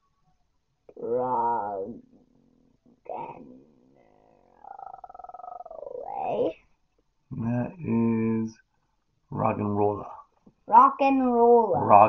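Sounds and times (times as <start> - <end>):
child making rattling growl: 3.1 - 3.6, 4.5 - 6.5.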